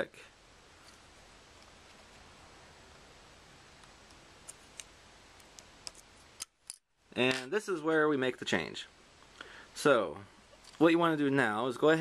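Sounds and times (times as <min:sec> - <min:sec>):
steady low hiss: 0:00.0 - 0:12.0.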